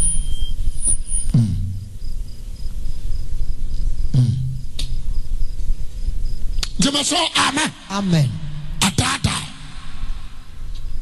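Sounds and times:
high thin chirping: 0.0 - 1.4
steady low hum: 0.0 - 11.0.

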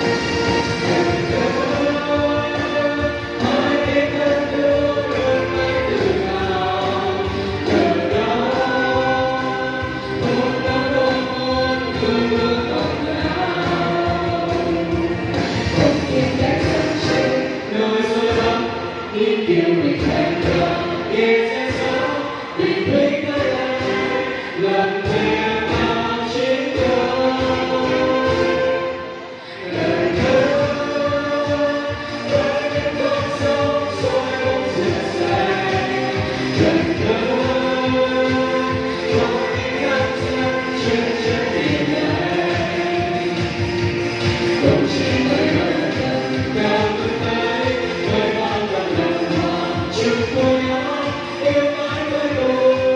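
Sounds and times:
backing track with steady beat: 0.0 - 52.9
vocal ensemble singing: 0.0 - 52.9.

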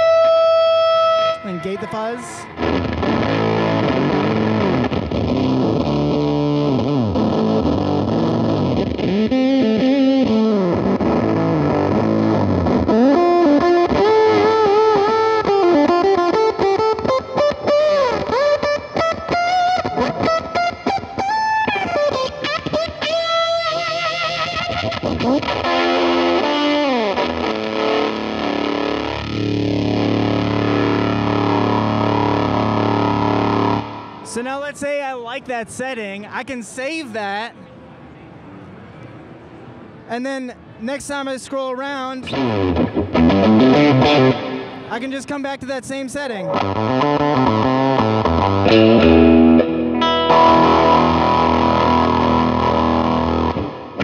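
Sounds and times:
distorted electric guitar: 0.0 - 35.8, 41.4 - 54.0.

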